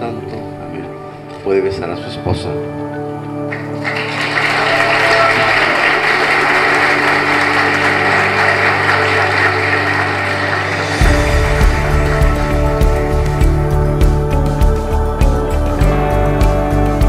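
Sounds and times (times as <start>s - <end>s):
soundtrack music with sustained tones: 0.0s - 17.0s
congregation applauding: 3.4s - 15.6s
deep pulsing beat: 10.4s - 17.0s.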